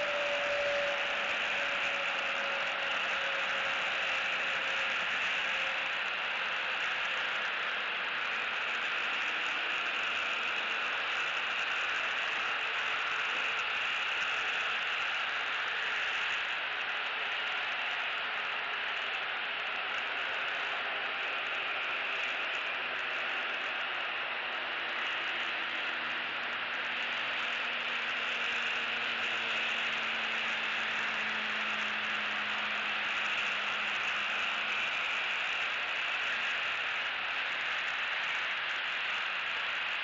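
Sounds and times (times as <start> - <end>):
steady outdoor hiss: 0.0 - 40.0.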